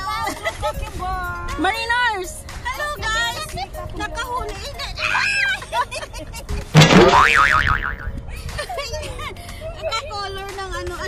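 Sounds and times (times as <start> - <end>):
cartoon boing sound effect: 6.8 - 8.2.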